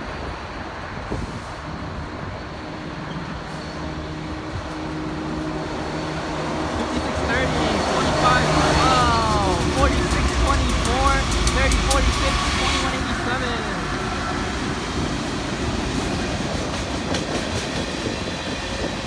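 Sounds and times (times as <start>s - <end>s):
diesel locomotive engine rumble: 0.0s - 19.0s
train cars rumbling and clattering: 0.0s - 19.0s.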